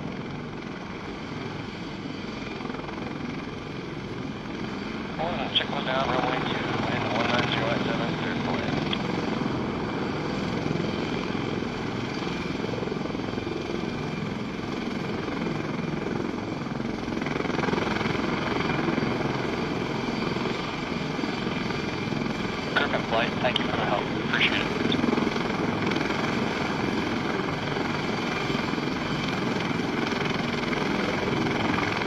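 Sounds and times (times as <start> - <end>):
helicopter engines and rotor: 0.0 - 32.0.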